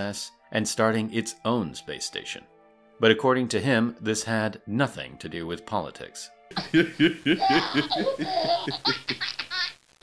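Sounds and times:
man laughing hard: 0:06.5 - 0:09.4.

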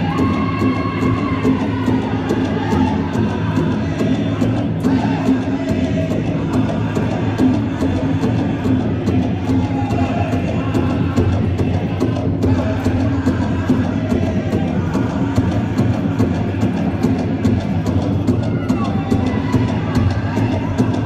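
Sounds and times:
group singing: 0:00.0 - 0:21.0
large hand drum beating: 0:00.0 - 0:21.0.

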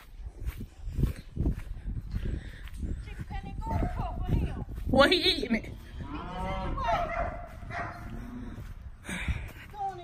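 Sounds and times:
dog barking: 0:06.8 - 0:08.1.

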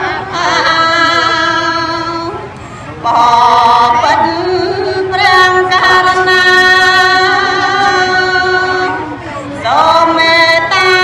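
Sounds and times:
woman singing a chanted song: 0:00.0 - 0:11.0.

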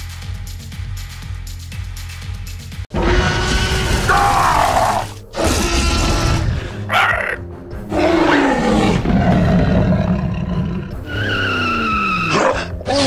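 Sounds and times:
background music: 0:00.0 - 0:13.0
dinosaur roar: 0:02.9 - 0:13.0.

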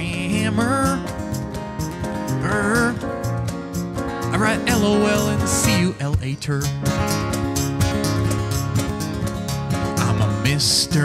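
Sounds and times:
person singing: 0:00.0 - 0:01.1, 0:02.3 - 0:03.1, 0:04.3 - 0:06.8, 0:10.0 - 0:11.0
acoustic guitar strumming: 0:00.0 - 0:11.0
cajon: 0:00.0 - 0:11.0
keyboard: 0:00.0 - 0:11.0.

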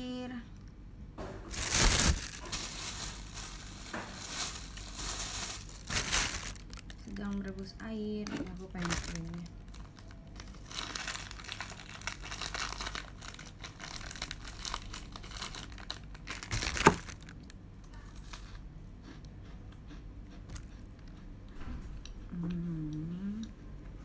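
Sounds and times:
snack packet crinkling and tearing: 0:01.5 - 0:07.7, 0:08.6 - 0:17.6
packet rustling: 0:01.5 - 0:17.5.

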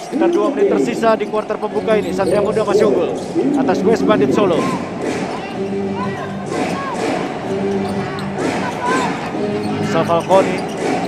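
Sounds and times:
arena background music: 0:00.0 - 0:11.0
sneakers squeaking: 0:01.9 - 0:03.8, 0:04.6 - 0:11.0.

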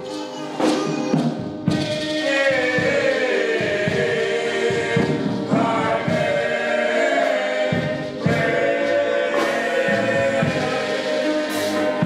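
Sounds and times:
male vocal group singing in harmony: 0:01.6 - 0:12.0.

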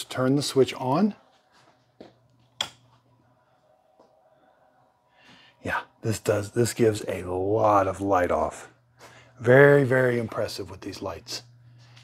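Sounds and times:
faint low hum: 0:00.0 - 0:12.0
light switch flipping: 0:02.6 - 0:02.8.

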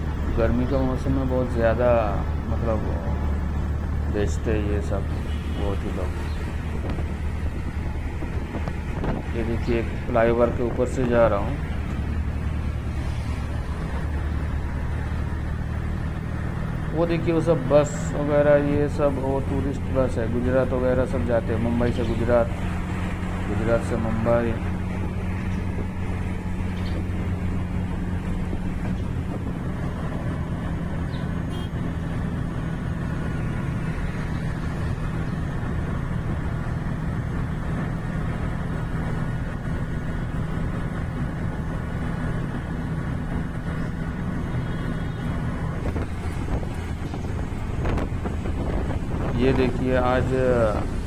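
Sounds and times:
auto-rickshaw engine running: 0:00.0 - 0:51.0
road and traffic noise: 0:00.0 - 0:51.0.

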